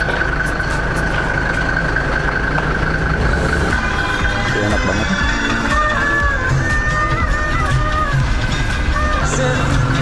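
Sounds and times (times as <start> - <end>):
high-pitched whine: 0.0 - 10.0
vehicle engine idling: 0.0 - 10.0.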